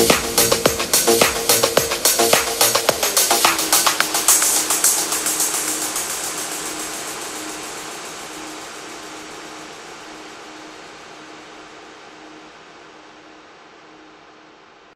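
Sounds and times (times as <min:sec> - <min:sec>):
even hiss: 0:00.0 - 0:14.8.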